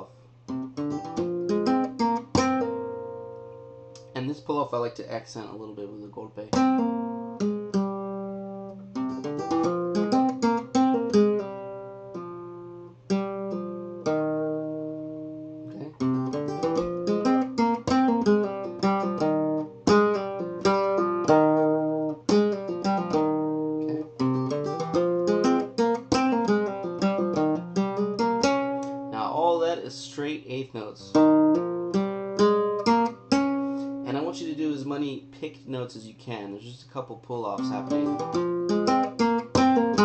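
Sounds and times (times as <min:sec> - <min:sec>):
flamenco guitar playing: 0:00.0 - 0:04.2, 0:06.5 - 0:29.8, 0:31.1 - 0:35.4, 0:37.5 - 0:40.0.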